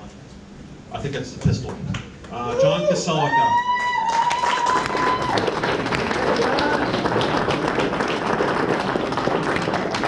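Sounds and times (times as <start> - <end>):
audience applauding: 3.6 - 10.0.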